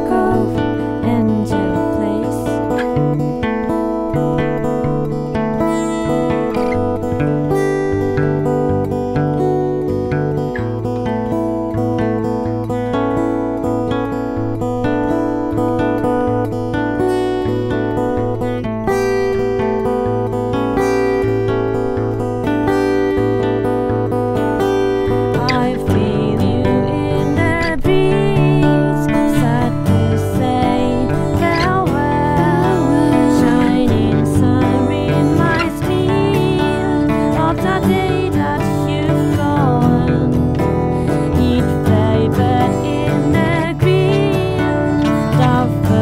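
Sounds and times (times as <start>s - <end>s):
acoustic guitars playing: 0.0s - 46.0s.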